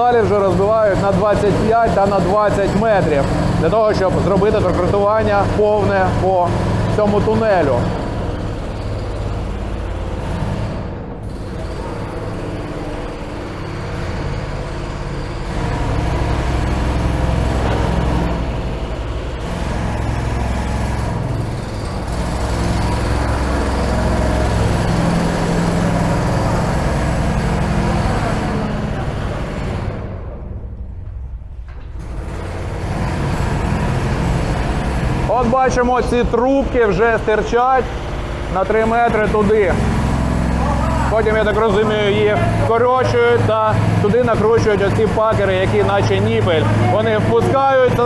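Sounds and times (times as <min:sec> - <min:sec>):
machinery rumble: 0:00.0 - 0:48.0.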